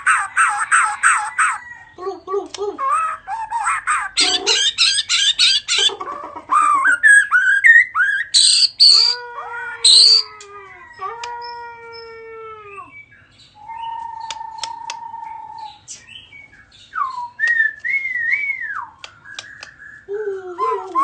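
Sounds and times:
bird singing whistled notes: 7.0s - 9.2s, 12.8s - 20.1s
bird clicks: 14.2s - 15.1s, 19.0s - 19.9s.

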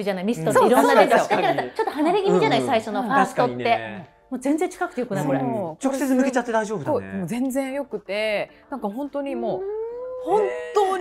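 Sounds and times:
person exclaiming: 9.6s - 11.0s.

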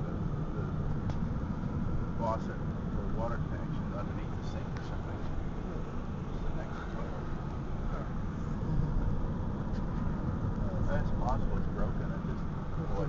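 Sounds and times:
road and engine rumble: 0.0s - 13.0s.

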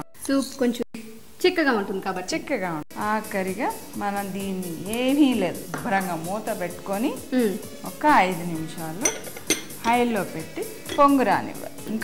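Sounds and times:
metal utensil clinking on dish: 9.0s - 10.1s, 10.8s - 11.2s.

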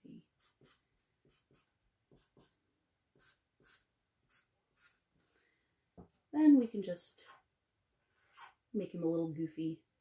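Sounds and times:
marker scratching on paper: 0.4s - 5.0s, 8.2s - 8.6s.

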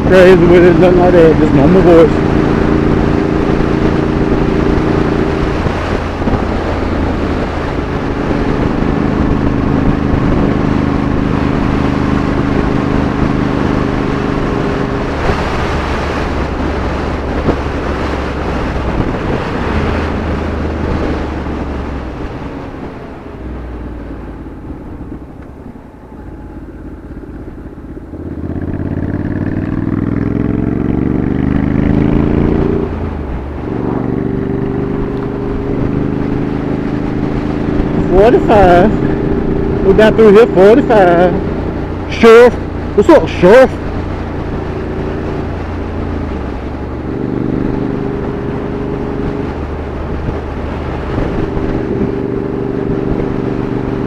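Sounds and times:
motorcycle engine: 0.0s - 54.0s
road noise rushing: 0.0s - 54.0s.

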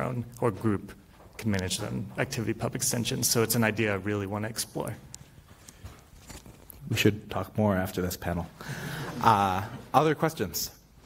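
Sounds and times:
man speaking: 0.0s - 5.2s, 6.8s - 11.0s.

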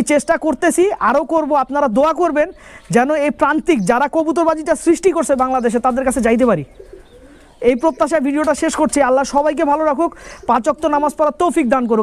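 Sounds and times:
man speaking: 0.0s - 6.7s, 7.6s - 12.0s
faint pigeon cooing: 3.7s - 11.5s.

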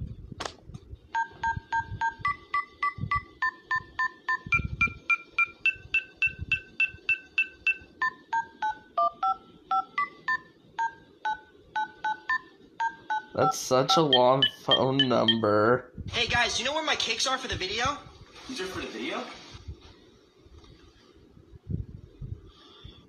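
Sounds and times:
dial-pad key tones: 1.2s - 15.5s.

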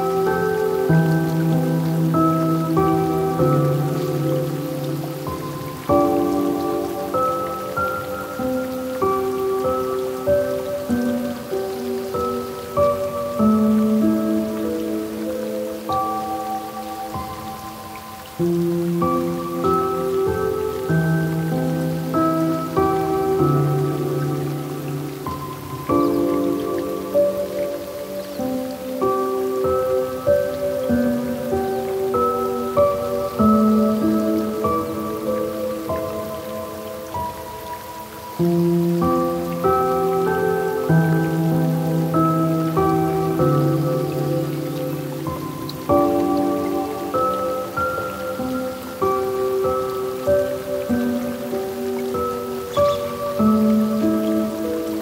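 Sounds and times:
faint steady hiss: 0.0s - 55.0s
gentle piano music: 0.0s - 55.0s.

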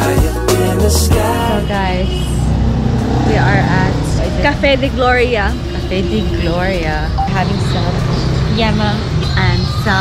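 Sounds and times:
steady low rumble: 1.1s - 10.0s
woman speaking: 3.2s - 10.0s.

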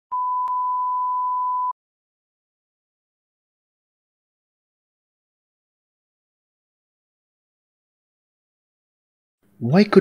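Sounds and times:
reference tone beep: 0.1s - 1.8s.

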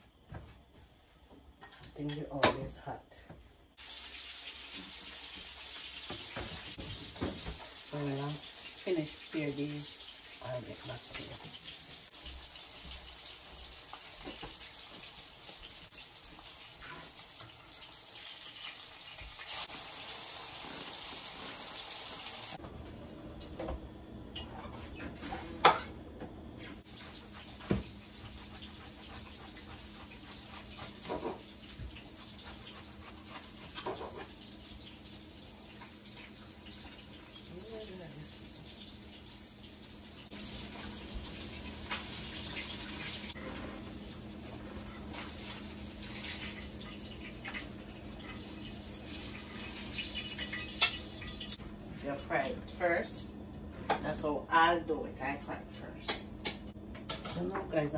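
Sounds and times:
fish sizzling in oil: 3.7s - 22.6s, 26.8s - 53.2s.

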